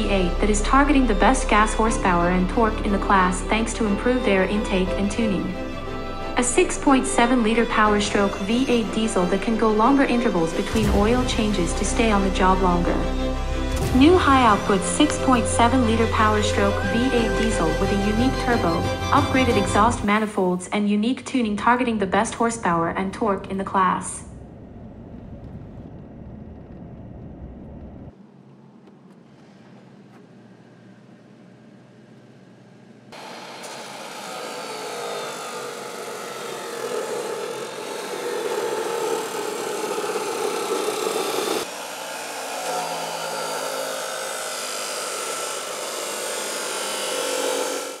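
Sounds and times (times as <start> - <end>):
chop saw cutting metal: 0.1 - 19.9, 33.2 - 48.0
road and engine rumble: 22.7 - 33.2.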